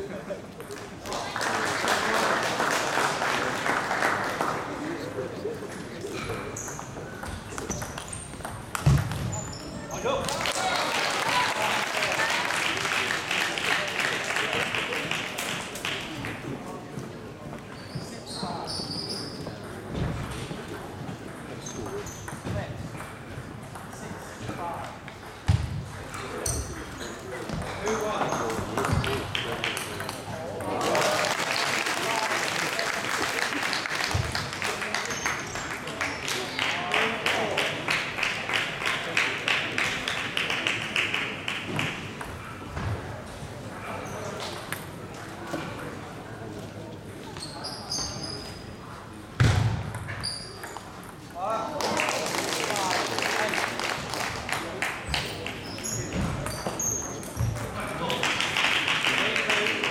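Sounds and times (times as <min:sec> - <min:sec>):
spectators chatting: 0:00.0 - 0:59.9
crowd clapping in unison: 0:00.7 - 0:04.9, 0:10.2 - 0:16.4, 0:30.8 - 0:42.0, 0:51.7 - 0:55.6, 0:58.1 - 0:59.9.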